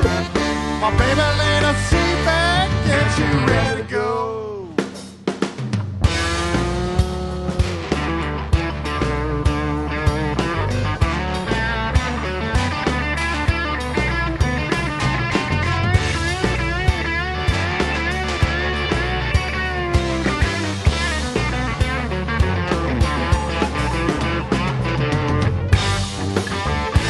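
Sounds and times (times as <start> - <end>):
electric guitar bending notes: 0.0 - 5.0, 6.0 - 27.0
bass guitar: 0.0 - 27.0
drum kit steady beat: 0.0 - 27.0.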